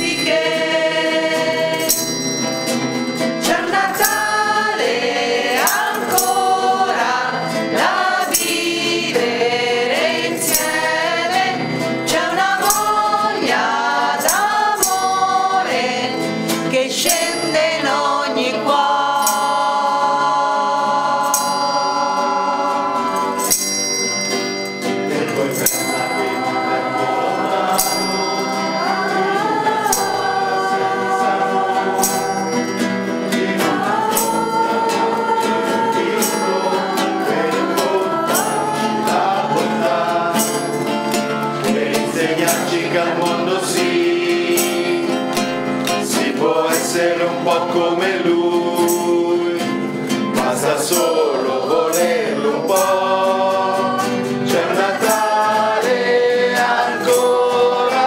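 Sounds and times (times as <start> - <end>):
women singing in unison: 0.0 - 2.2, 3.3 - 23.7, 25.8 - 49.8, 50.4 - 58.0
metal hand percussion strikes: 0.0 - 18.2, 19.1 - 20.0, 21.2 - 48.0
metal triangle ringing: 0.0 - 18.5, 21.2 - 42.8.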